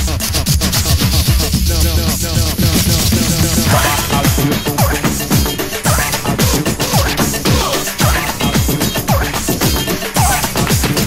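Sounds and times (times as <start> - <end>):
rapping over drum beat and bass: 0.0 - 11.0.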